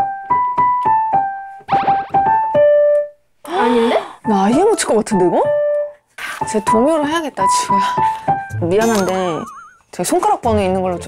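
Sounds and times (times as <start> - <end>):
vocal gasp: 3.5 - 4.2
digital piano notes: 6.6 - 11.0.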